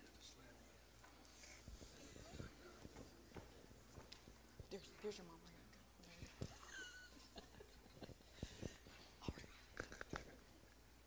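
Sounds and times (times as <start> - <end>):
faint whispered voices: 0.0 - 7.3, 8.1 - 10.4
footsteps: 1.0 - 5.3.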